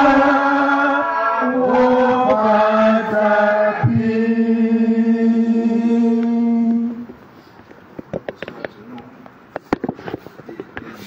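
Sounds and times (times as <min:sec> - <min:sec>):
congregation singing a hymn: 0:00.0 - 0:07.1.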